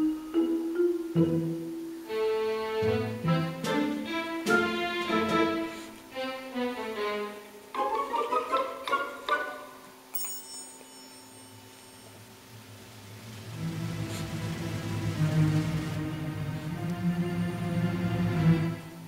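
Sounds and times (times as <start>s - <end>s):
high chime: 10.1s - 12.5s.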